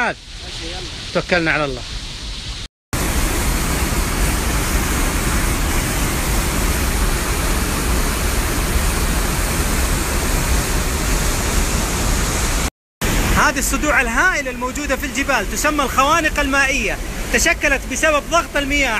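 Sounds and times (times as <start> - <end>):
waterfall rushing: 3.0 - 18.9.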